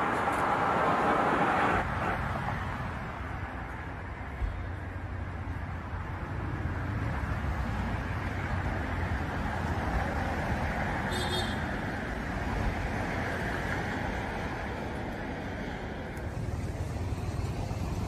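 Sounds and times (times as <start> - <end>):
traffic rumble: 0.0 - 18.0.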